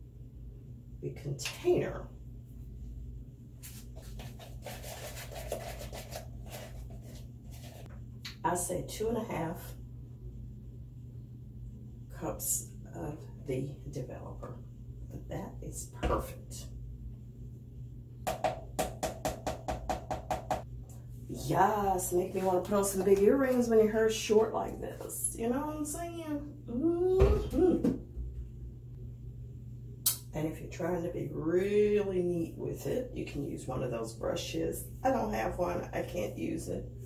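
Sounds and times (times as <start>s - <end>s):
plastic cup and bowl scraping: 3.6s - 7.9s
stirring tool clacking on container: 4.1s - 7.9s.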